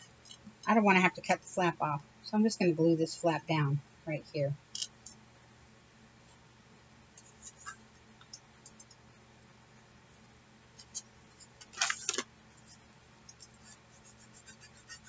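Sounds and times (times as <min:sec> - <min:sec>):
paper pages clicks and rustles: 0:11.6 - 0:12.3.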